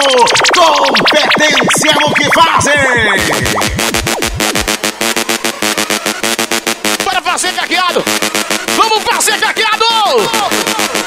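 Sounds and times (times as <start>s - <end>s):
voice with sliding pitch: 0.0s - 5.5s
electronic dance music: 0.0s - 11.0s.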